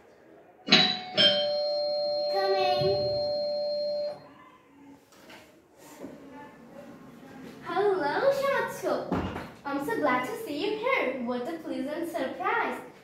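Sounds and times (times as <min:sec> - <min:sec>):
two-note doorbell chime: 0:00.7 - 0:04.2.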